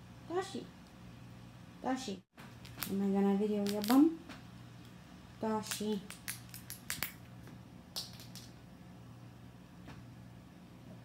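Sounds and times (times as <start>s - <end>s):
squirrel gnawing a nut: 2.5s - 4.1s, 5.6s - 7.2s.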